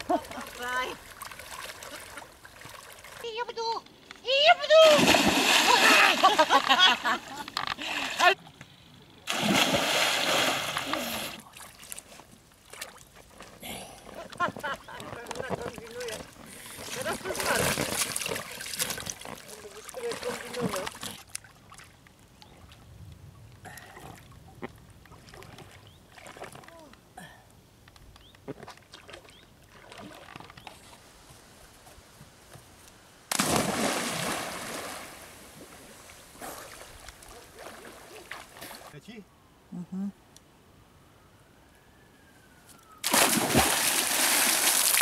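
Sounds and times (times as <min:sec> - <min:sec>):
water splashing: 0:00.0 - 0:03.4, 0:04.6 - 0:08.4, 0:09.3 - 0:13.4, 0:14.6 - 0:22.0, 0:33.3 - 0:39.0, 0:43.0 - 0:45.0
voices: 0:03.2 - 0:08.4
person plunging into water: 0:04.8 - 0:06.6, 0:09.3 - 0:11.8, 0:33.3 - 0:35.8, 0:43.0 - 0:45.0.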